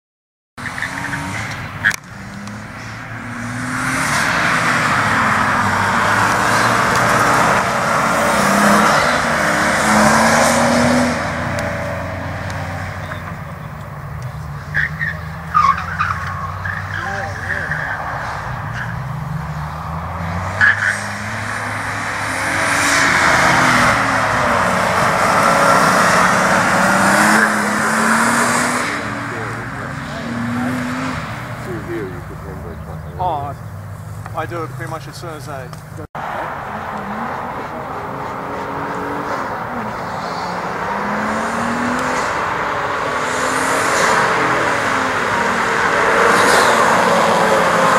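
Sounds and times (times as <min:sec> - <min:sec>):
car engine revving hard: 0:00.6 - 0:13.7, 0:14.5 - 0:33.6, 0:36.1 - 0:47.9
tyres squealing: 0:00.6 - 0:36.0.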